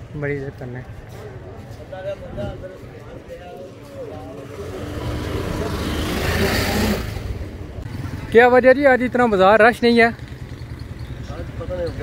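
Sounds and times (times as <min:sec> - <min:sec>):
vehicle driving past: 0:04.2 - 0:08.4.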